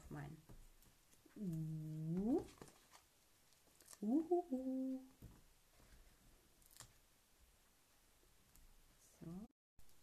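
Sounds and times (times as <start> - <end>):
woman humming: 1.3 - 2.6, 4.0 - 5.2.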